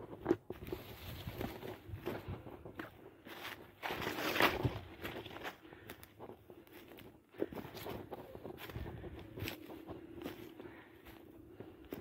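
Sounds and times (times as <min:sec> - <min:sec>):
footsteps through dry grass: 0:00.0 - 0:12.0.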